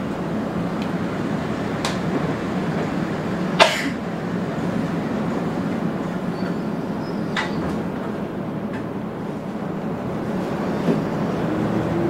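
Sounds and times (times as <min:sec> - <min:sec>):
electric train rumbling: 0:00.0 - 0:12.0.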